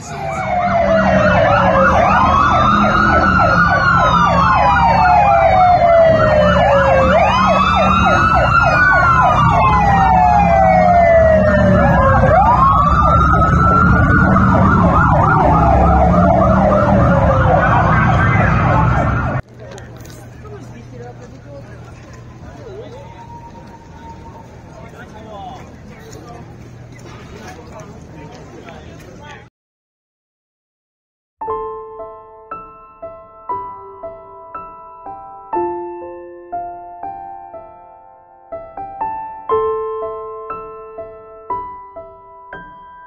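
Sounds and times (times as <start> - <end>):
fast pulsing siren tone: 0.0 - 19.4, 22.6 - 25.1
police sirens wailing: 0.0 - 29.3
street noise: 0.0 - 29.5.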